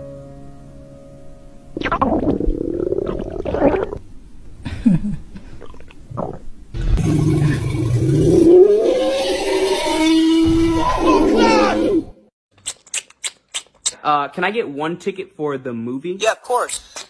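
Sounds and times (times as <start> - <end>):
cartoon stomach rumbles: 1.8 - 4.0, 5.4 - 9.2.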